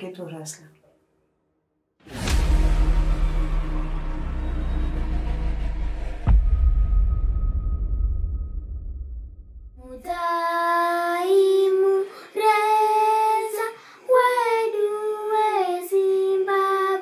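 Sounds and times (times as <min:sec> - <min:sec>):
low rumble: 0:02.1 - 0:10.1
child singing unaccompanied: 0:09.8 - 0:17.0.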